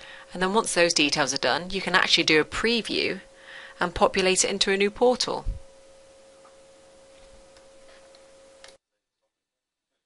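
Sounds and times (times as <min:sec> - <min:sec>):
microphone hiss: 0:00.0 - 0:08.8
steady hum tone: 0:00.0 - 0:08.8.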